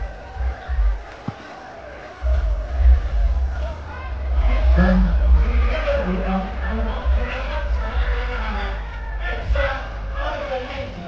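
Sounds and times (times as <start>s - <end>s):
distorted bass rumble: 0.0s - 1.1s, 2.2s - 11.0s
man speaking into a microphone: 4.5s - 11.0s.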